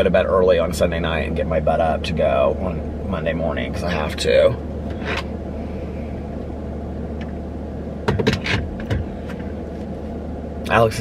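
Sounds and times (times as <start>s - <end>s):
car engine idling: 0.0s - 11.0s
knocks and rustles: 8.0s - 10.1s.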